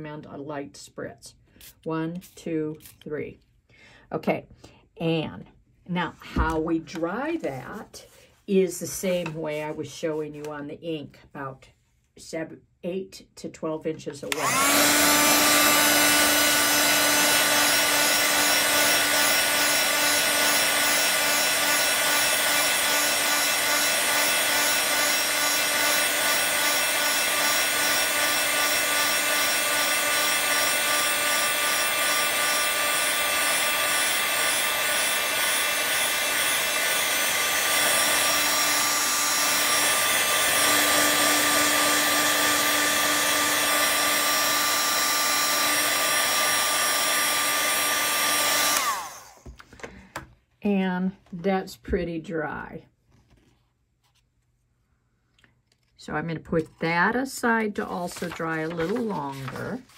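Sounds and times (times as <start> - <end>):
heat tool fan whirring: 14.3 - 49.5.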